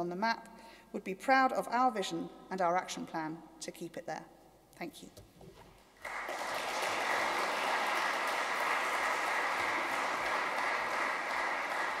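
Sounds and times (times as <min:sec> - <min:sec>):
audience applauding: 0:06.0 - 0:12.0.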